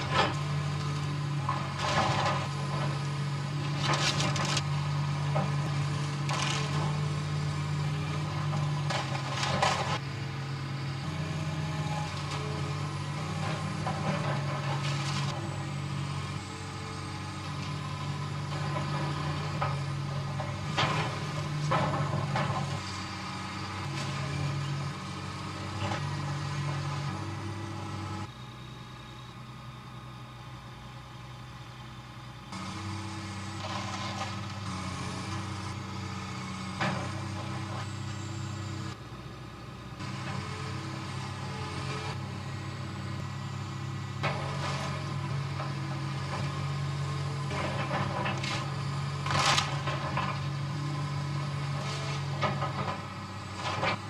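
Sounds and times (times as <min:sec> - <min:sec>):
excavator diesel engine running: 0:00.0 - 0:54.0.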